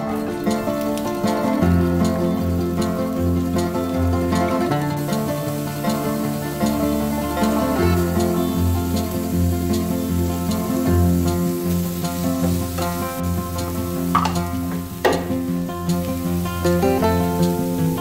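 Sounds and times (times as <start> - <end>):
acoustic guitar music: 0.0 - 18.0
onions sizzling in frying pan: 0.2 - 18.0.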